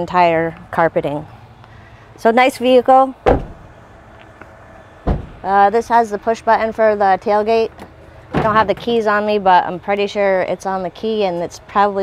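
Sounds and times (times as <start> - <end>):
pickup truck door shutting: 3.2 - 5.5, 7.8 - 9.0.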